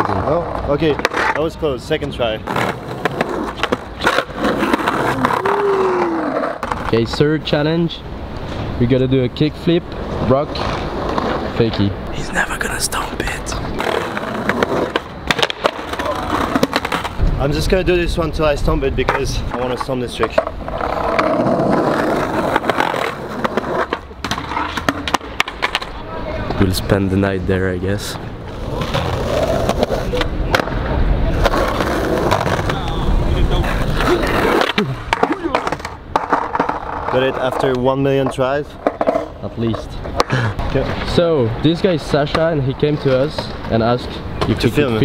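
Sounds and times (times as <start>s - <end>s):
skateboard clacking on ground: 0.0s - 7.3s, 13.8s - 17.5s, 19.0s - 26.7s, 28.5s - 41.3s
skateboard wheels rolling on concrete: 0.0s - 45.0s.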